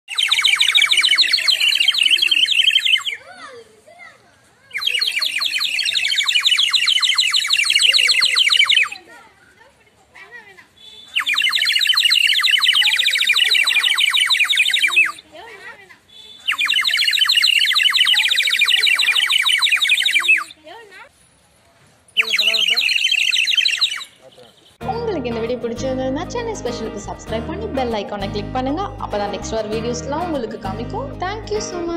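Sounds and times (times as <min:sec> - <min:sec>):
water bird whistle warbling: 0:00.1 - 0:03.3, 0:04.7 - 0:09.0, 0:10.8 - 0:15.2, 0:16.2 - 0:20.6, 0:22.2 - 0:24.2.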